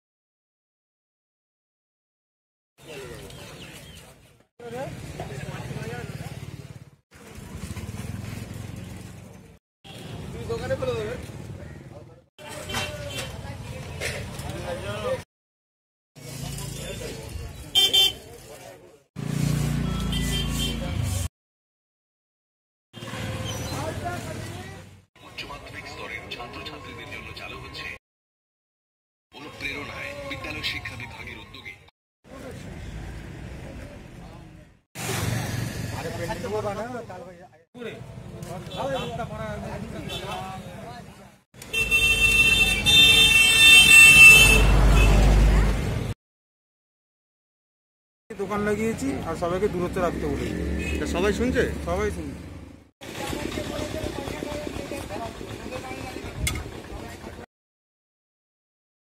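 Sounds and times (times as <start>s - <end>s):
vehicle horn toot: 17.7s - 18.2s, 19.8s - 21.0s, 41.6s - 45.2s
people talking: 23.7s - 28.0s, 36.0s - 41.3s, 53.1s - 57.4s.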